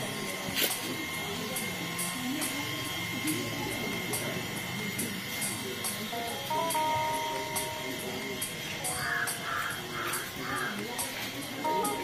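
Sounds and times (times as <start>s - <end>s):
murmur of voices: 0.0s - 12.0s
bird calling: 8.8s - 11.0s.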